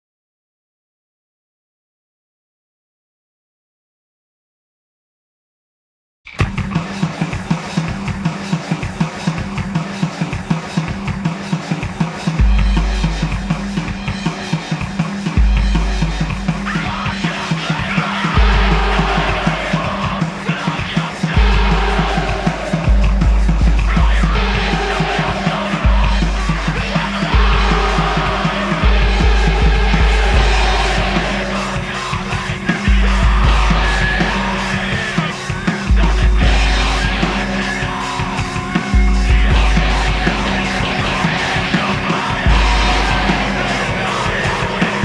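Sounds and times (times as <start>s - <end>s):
bass guitar: 6.3s - 45.0s
distorted guitars: 6.3s - 45.0s
heavy instrumental metal band: 6.3s - 45.0s
regular drum hits: 6.3s - 45.0s.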